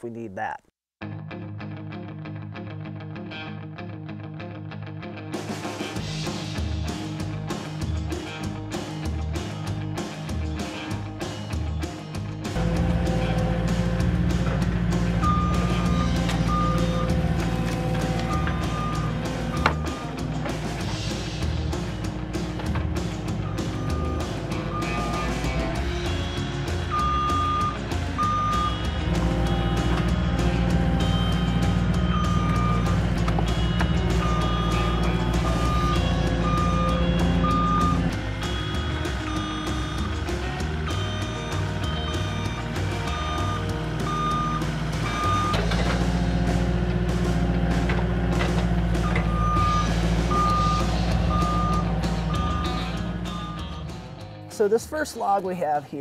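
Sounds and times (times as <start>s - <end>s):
background music: 0.0s - 56.0s
backup alarm beeping: 15.0s - 20.2s, 23.3s - 26.2s, 26.8s - 45.7s, 49.0s - 54.0s.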